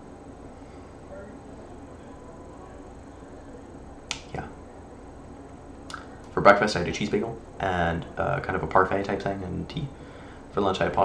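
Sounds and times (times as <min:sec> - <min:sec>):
short sharp clicks: 0:04.1 - 0:04.3.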